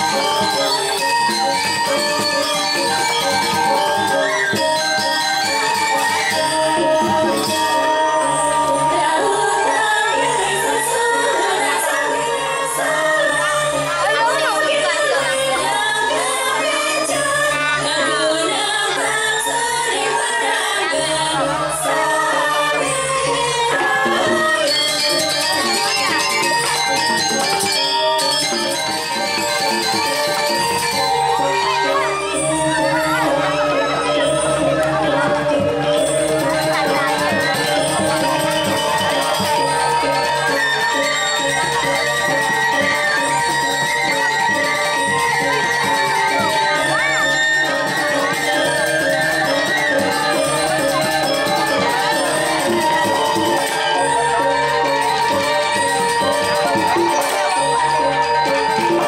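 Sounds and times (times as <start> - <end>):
gamelan metallophones playing: 0.0 - 59.0.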